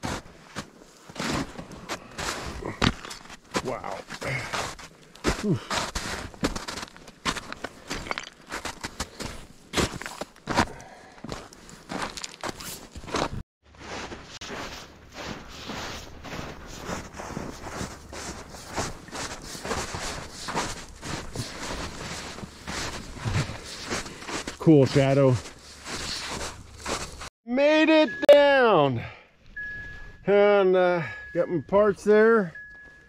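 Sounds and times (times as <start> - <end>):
footsteps crunching on snow: 0.0 - 27.3.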